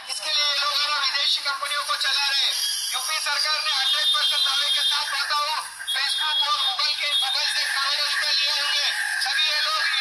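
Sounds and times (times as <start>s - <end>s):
man shouting through loudspeaker: 0.0s - 10.0s
thin high whine: 2.2s - 6.8s.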